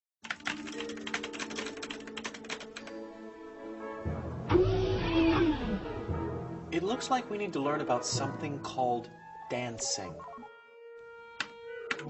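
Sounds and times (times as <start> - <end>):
fast clicks like typing: 0.2 - 2.9.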